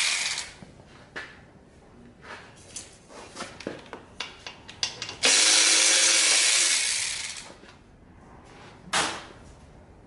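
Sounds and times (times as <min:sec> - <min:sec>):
handheld power tool running: 0:00.0 - 0:00.6, 0:05.2 - 0:07.5.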